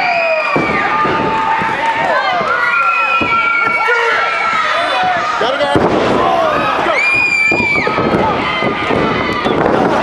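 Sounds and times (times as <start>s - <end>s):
crowd shouting and yelling: 0.0s - 10.0s.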